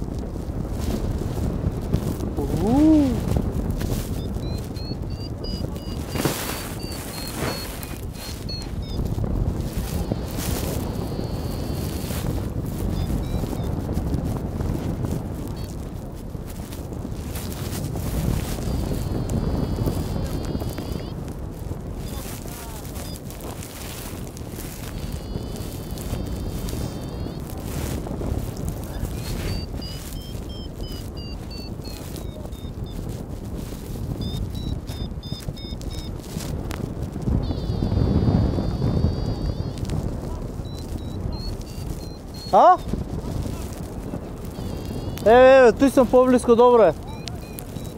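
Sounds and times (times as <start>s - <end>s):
wind buffeting microphone: 0.0s - 47.9s
faint high beeps: 4.1s - 12.3s, 12.9s - 13.7s, 18.5s - 21.2s, 22.0s - 24.0s, 24.8s - 27.5s, 28.9s - 33.0s, 34.2s - 36.3s, 37.4s - 43.8s, 44.4s - 47.9s.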